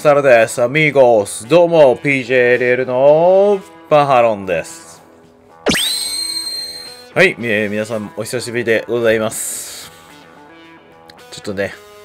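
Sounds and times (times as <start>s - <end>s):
rising sweep into ringing tone: 5.7s - 7.1s.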